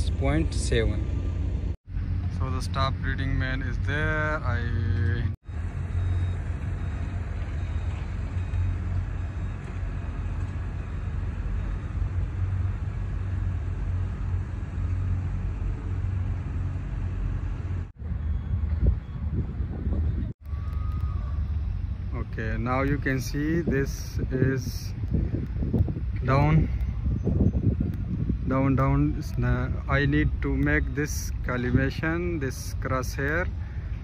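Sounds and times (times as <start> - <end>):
distant vehicle and machinery rumble: 0.0 - 34.0.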